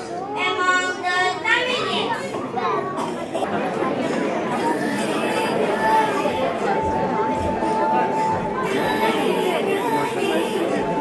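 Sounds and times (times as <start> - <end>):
girl's voice through a microphone: 0.0 - 3.5.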